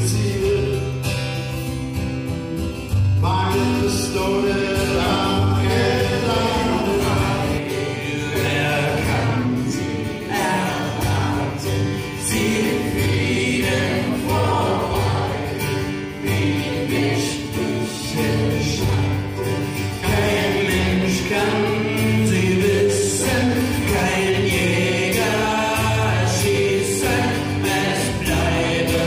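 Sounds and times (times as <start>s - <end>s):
men singing together: 0.0s - 1.0s, 3.2s - 29.0s
acoustic guitar: 0.0s - 29.0s.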